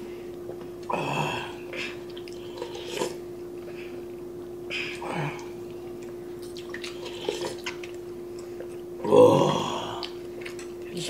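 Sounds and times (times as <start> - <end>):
steady low hum: 0.0 - 11.0
wet mouth sounds: 1.8 - 3.2, 4.8 - 8.8, 9.4 - 10.7.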